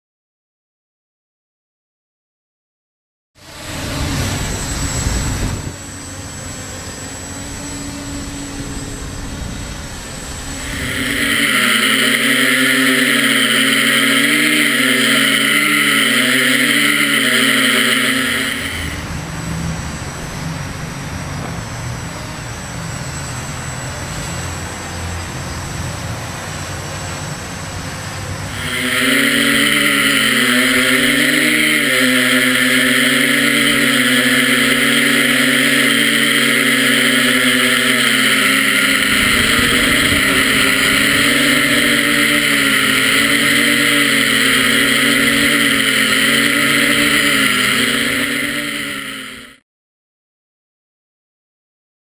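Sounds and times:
drone propellers whirring: 0:03.4 - 0:49.6.

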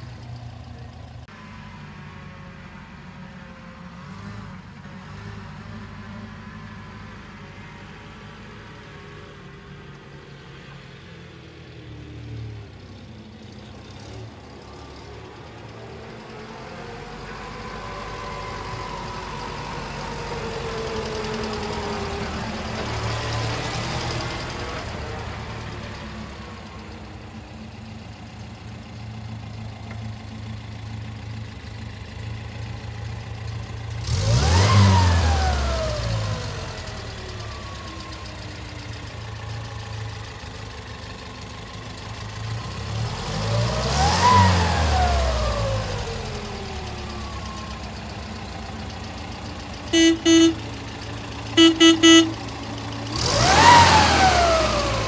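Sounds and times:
vehicle engine running and revving: 0:00.0 - 0:55.0.

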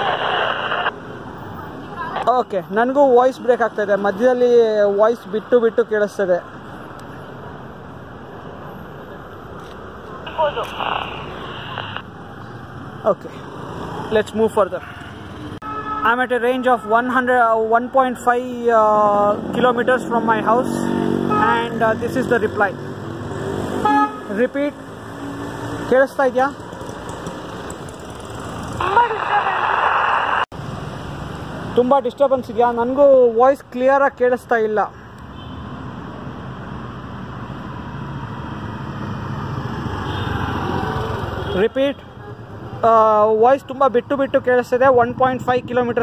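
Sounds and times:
voice over walkie-talkie: 0:00.0 - 0:00.9, 0:10.3 - 0:12.0, 0:28.8 - 0:30.2
radio static: 0:00.0 - 0:01.0, 0:10.2 - 0:12.1, 0:28.8 - 0:30.5.

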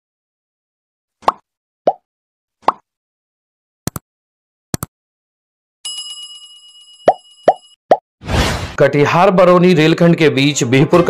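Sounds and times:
cartoon pop sound effects: 0:01.2 - 0:02.0, 0:02.6 - 0:02.8.

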